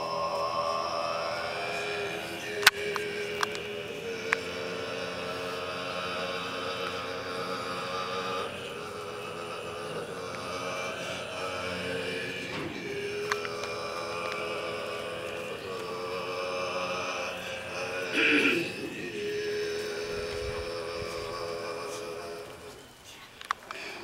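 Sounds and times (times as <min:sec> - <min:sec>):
sustained ritual drone: 0:00.0 - 0:24.0
faint clicks: 0:02.4 - 0:04.5, 0:12.5 - 0:16.0, 0:22.4 - 0:24.0.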